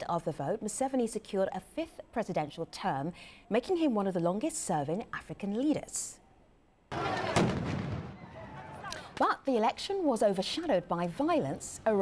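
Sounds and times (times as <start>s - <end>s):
loud bang: 6.9s - 9.2s
noisy din: 6.9s - 9.2s
sharp crack: 6.9s - 9.2s.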